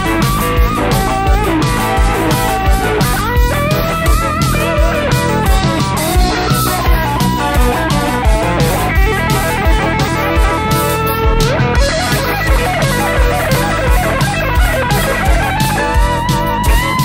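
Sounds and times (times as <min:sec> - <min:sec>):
bass: 0:00.0 - 0:17.0
electric guitar lead line: 0:00.0 - 0:17.0
steady drum beat: 0:00.0 - 0:17.0.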